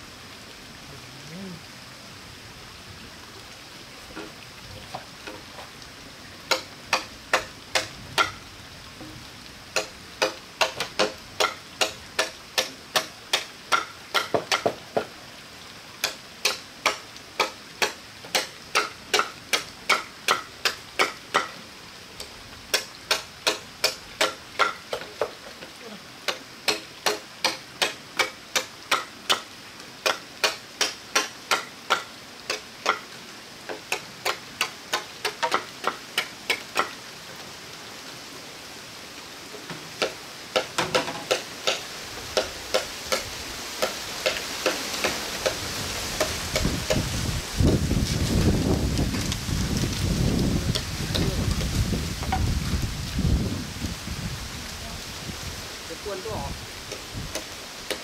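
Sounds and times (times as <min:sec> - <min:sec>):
background hiss: 0:00.0 - 0:58.0
blade chopping hollow bamboo: 0:06.5 - 0:08.4, 0:09.8 - 0:15.1, 0:16.0 - 0:21.6, 0:22.7 - 0:25.4, 0:26.3 - 0:33.0, 0:40.0 - 0:41.8, 0:42.4 - 0:45.6, 0:46.2 - 0:47.0, 0:57.3 - 0:58.0.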